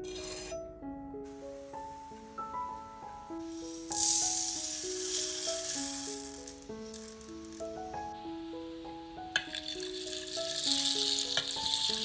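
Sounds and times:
background music with held notes: 0.0 - 12.0
lentils pouring into saucepan: 3.4 - 8.1, 8.9 - 12.0.

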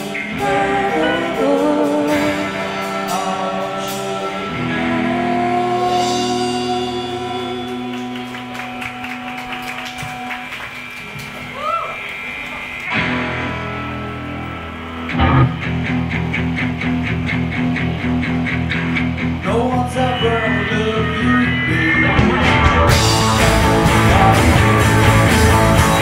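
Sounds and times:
bass: 0.0 - 26.0
electric guitar: 0.0 - 26.0
keyboard chords: 0.0 - 26.0
driving drum beat: 22.0 - 26.0.

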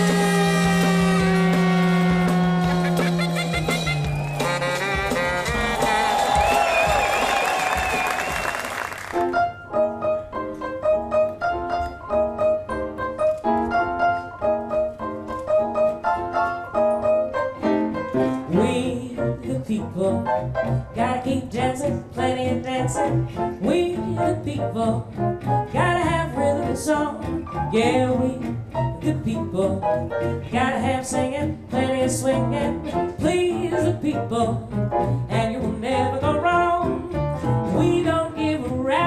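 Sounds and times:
double bass: 0.0 - 8.0, 16.2 - 39.0
piano playing chords: 0.0 - 21.0
woman singing: 18.2 - 39.0.

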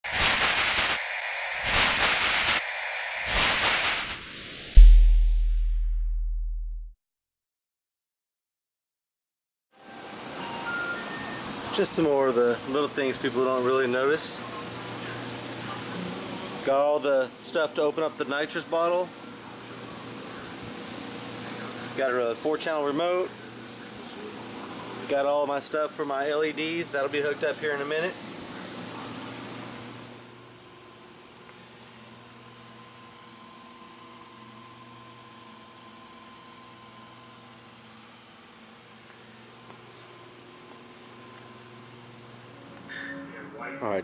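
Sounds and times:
glitchy static noise bursts: 0.0 - 5.8.

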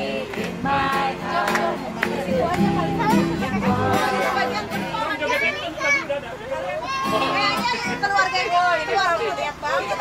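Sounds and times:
children chattering and calling out: 1.7 - 10.0.

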